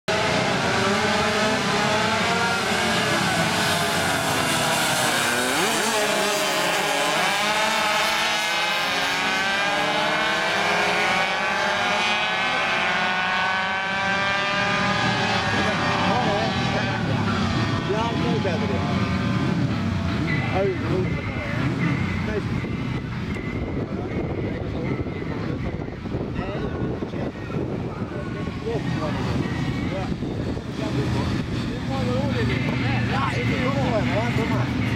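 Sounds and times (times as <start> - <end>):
racing motorcycles revving: 0.1 - 34.9.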